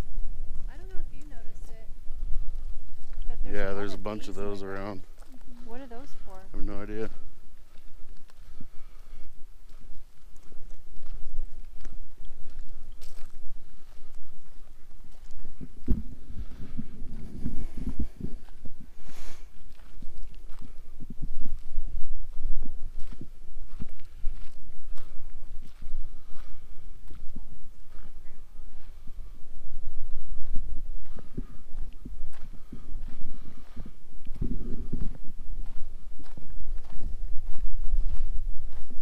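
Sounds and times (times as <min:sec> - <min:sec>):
wind rumble on microphone: 0:00.0 - 0:39.0
footsteps on gravel: 0:02.4 - 0:29.1, 0:30.0 - 0:39.0.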